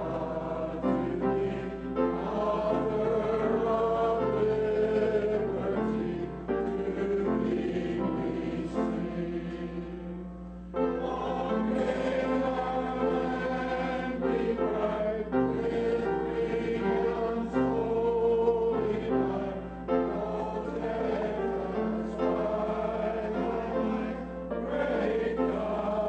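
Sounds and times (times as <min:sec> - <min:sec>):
congregation singing a hymn: 0:00.0 - 0:26.0
steady low hum: 0:00.0 - 0:26.0.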